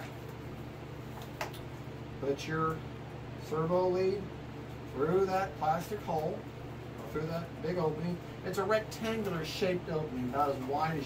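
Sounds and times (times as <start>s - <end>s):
low workshop hum: 0.0s - 11.0s.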